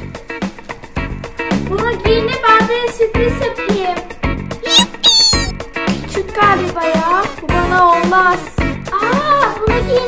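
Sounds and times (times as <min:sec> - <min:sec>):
cat meowing: 0:04.7 - 0:05.5.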